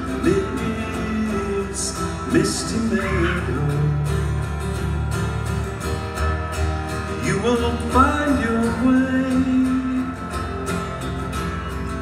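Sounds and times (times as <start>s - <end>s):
person singing: 0.0s - 4.4s
acoustic guitar strumming: 0.0s - 12.0s.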